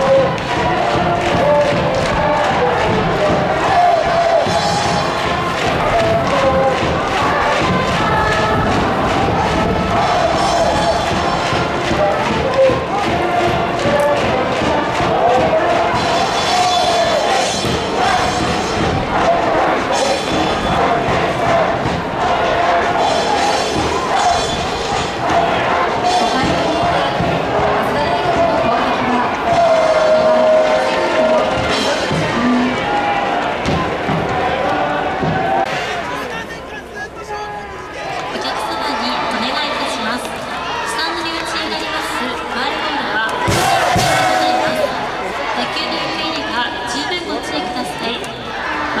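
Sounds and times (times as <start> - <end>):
brass band playing: 0.0 - 33.8, 41.0 - 48.0
steady drum beat: 0.0 - 35.8, 43.4 - 45.0
crowd singing in unison: 0.0 - 36.4, 37.9 - 49.0.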